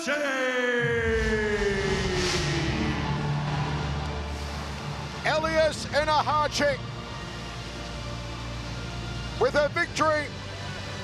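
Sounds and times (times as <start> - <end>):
low rumble: 0.8 - 7.6.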